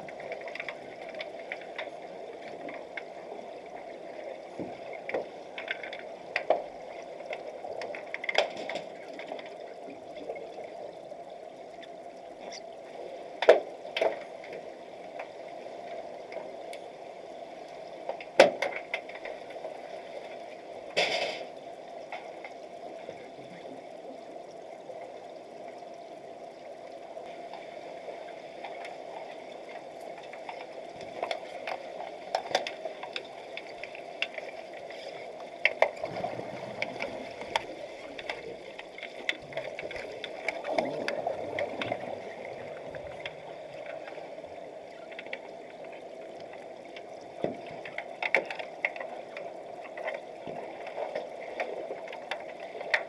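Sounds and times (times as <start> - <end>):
faint ticks: 0.0 - 12.7, 13.3 - 53.0
steady underwater hum: 0.0 - 53.0
sharp underwater clicks: 29.7 - 53.0.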